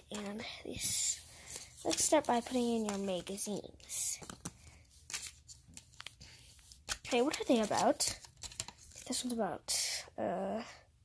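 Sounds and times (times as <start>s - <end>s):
paper magazines rustling: 0.0s - 9.4s.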